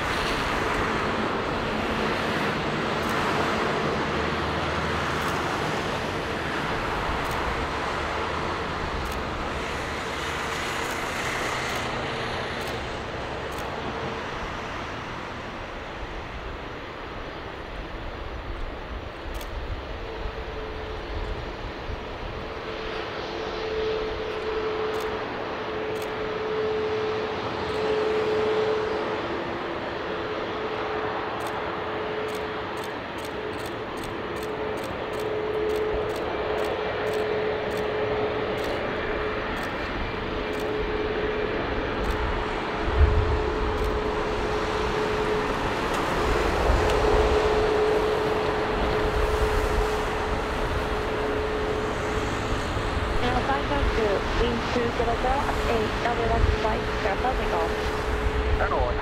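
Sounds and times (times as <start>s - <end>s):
jet engines idling: 0.0s - 59.0s.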